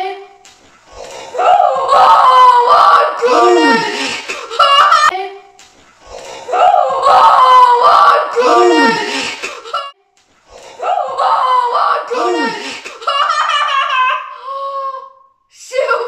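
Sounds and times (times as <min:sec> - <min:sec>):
long high held cry: 0:01.2 - 0:05.1, 0:06.4 - 0:09.9, 0:10.7 - 0:15.2
man and boy shrieking: 0:01.3 - 0:05.1, 0:06.5 - 0:09.9, 0:10.8 - 0:13.4.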